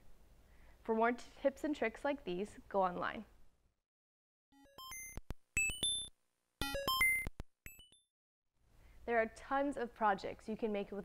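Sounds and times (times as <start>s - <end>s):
synth bleep jingle: 4.6s - 8.0s.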